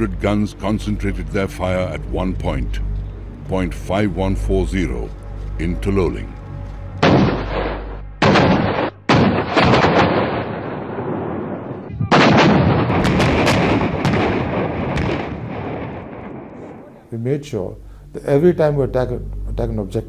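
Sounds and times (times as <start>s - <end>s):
sharp cracks: 7.0s - 11.2s, 12.1s - 17.0s
howitzer shots echoing: 7.0s - 17.1s.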